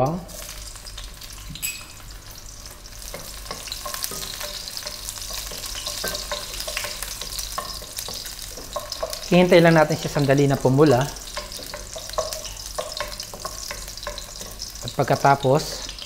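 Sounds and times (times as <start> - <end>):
garlic sizzling in oil: 0.0 - 16.0.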